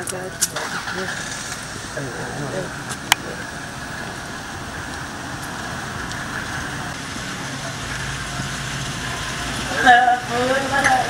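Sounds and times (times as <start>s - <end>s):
car engine idling: 0.0s - 11.0s
outdoor hiss: 0.4s - 11.0s.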